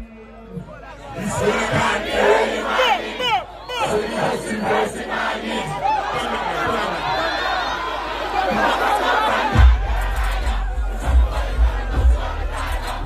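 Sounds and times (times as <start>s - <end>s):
crowd shouting and cheering: 0.0s - 13.0s
music bass: 9.5s - 13.0s.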